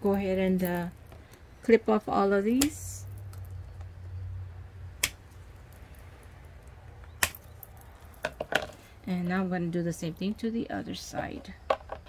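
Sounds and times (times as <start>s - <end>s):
cutters snapping zip ties: 5.0s - 8.2s.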